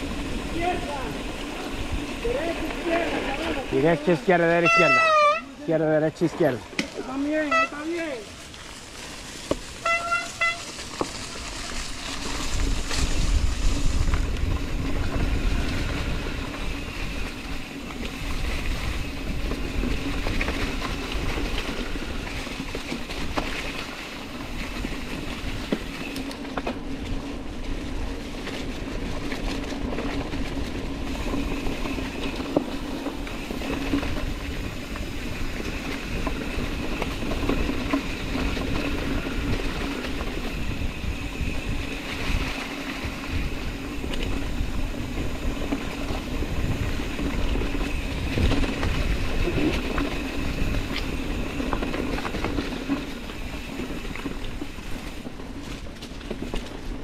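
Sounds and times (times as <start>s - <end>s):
wind rumble on microphone: 0.0s - 3.9s, 8.8s - 57.0s
bike tyres on leafy dirt trail: 0.0s - 57.0s
bike whirring: 0.0s - 57.0s.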